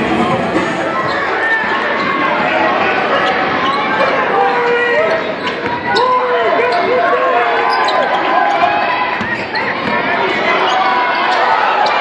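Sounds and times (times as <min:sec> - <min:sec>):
crowd voices and shouts: 0:00.0 - 0:12.0.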